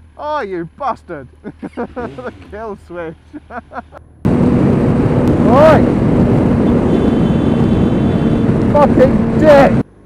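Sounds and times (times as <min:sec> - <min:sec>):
motorcycle engine hum: 0:00.0 - 0:10.0
wind rush on microphone: 0:04.3 - 0:09.8.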